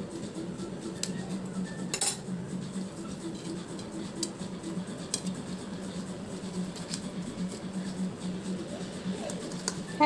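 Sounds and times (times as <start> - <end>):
metal utensils scraping a plate: 1.9 - 2.2.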